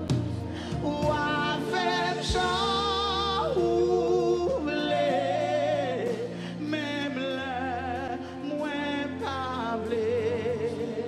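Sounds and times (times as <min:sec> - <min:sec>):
low musical accompaniment: 0:00.0 - 0:11.0.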